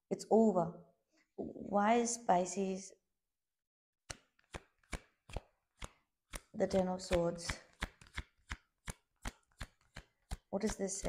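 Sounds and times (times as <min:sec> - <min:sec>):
cards slapping onto deck: 0:04.1 - 0:10.5.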